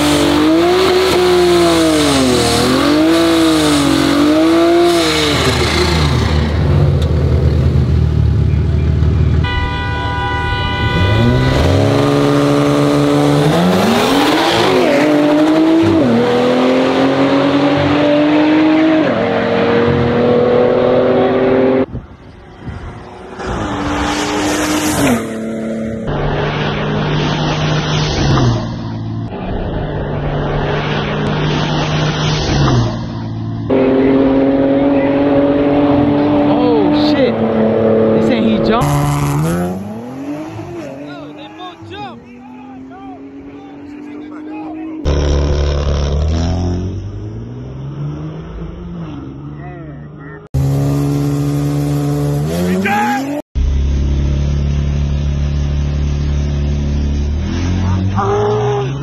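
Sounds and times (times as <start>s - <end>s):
cars accelerating through gears: 0.0s - 7.1s, 10.9s - 21.9s, 32.1s - 53.4s
car engines revving: 0.0s - 59.0s.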